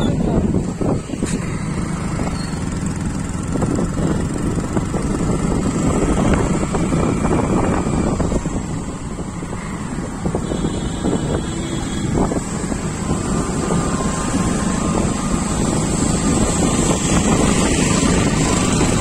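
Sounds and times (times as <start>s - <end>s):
vehicle engine and tyre rumble: 0.0s - 19.0s
wind buffeting microphone: 0.0s - 19.0s.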